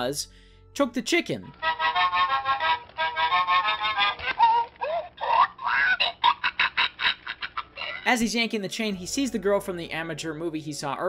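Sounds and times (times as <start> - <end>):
squeaky chicken toy squawking: 1.6 - 6.2.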